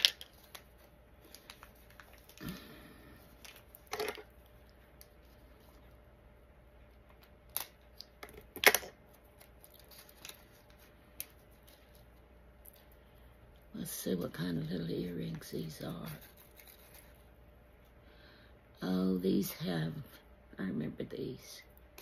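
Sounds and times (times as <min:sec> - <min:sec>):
plastic bag crinkling: 0:00.0 - 0:05.8, 0:07.1 - 0:12.9.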